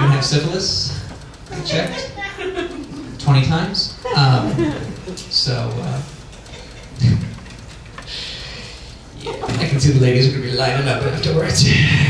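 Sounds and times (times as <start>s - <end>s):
faint audience laughter: 2.2s - 3.2s.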